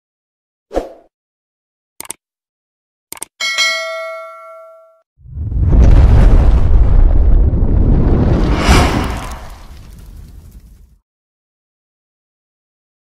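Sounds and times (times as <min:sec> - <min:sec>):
sharp clicks: 0:02.0 - 0:02.2, 0:03.1 - 0:03.4
bell-like ding: 0:03.4 - 0:05.0.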